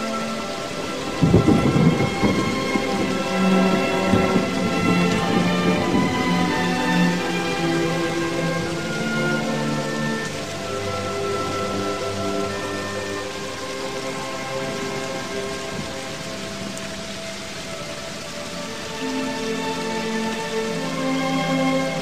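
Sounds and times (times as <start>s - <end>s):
rain-like hiss: 0.0s - 22.0s
slow sustained chords: 0.0s - 22.0s.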